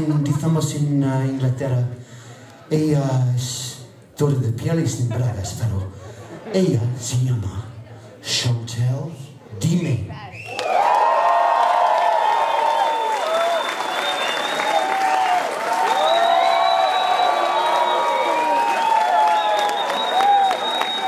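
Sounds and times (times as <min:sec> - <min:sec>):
audience cheering and shrieking: 0:10.5 - 0:21.0
audience clapping: 0:10.5 - 0:21.0.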